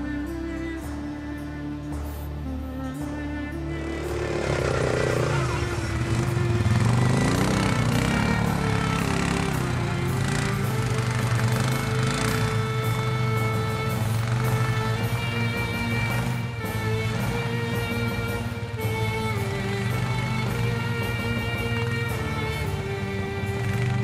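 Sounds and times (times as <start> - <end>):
background music: 0.0 - 24.0
engine revving: 2.4 - 24.0.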